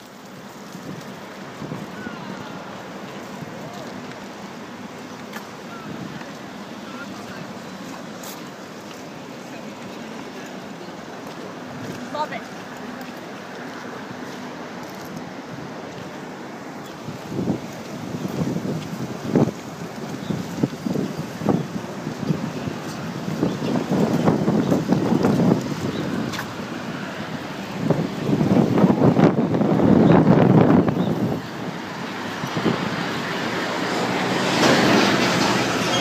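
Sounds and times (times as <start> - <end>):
wind buffeting microphone: 0.0 - 12.2, 14.7 - 36.0
city street traffic: 0.0 - 36.0.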